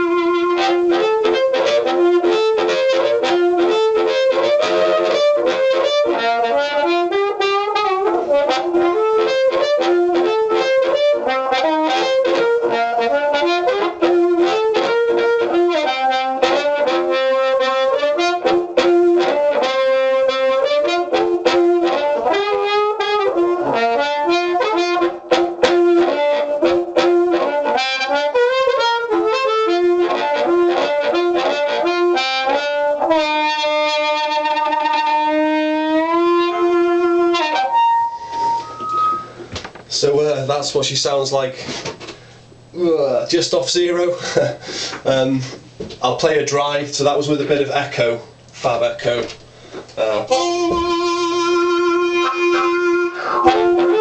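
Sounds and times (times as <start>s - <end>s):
amplified blues harmonica: 0.0s - 39.5s, 49.5s - 54.0s.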